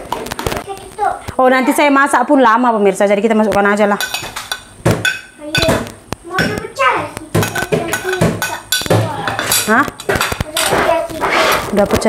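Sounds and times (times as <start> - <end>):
metal spoon scraping a plate: 7.5 - 11.8.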